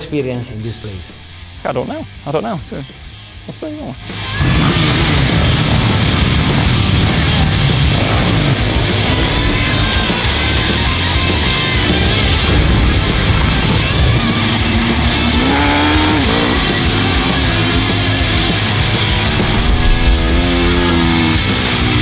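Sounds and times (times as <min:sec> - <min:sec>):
loud rock music: 0:00.0 - 0:22.0
motorcycle engines revving: 0:04.0 - 0:22.0.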